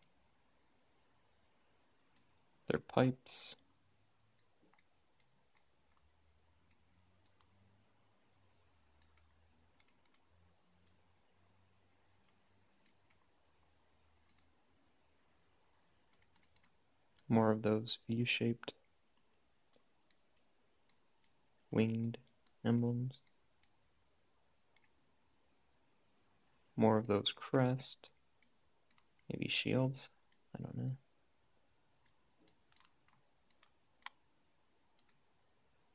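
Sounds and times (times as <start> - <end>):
computer mouse clicks: 0.0 - 0.2, 2.1 - 2.4, 4.3 - 7.6, 8.9 - 11.0, 12.2 - 14.6, 16.1 - 17.3, 19.1 - 23.8, 24.7 - 25.0, 27.0 - 29.3, 30.2 - 34.3, 34.9 - 35.3
person speaking: 2.2 - 3.7, 16.5 - 18.9, 21.6 - 23.4, 26.7 - 28.2, 29.2 - 31.1.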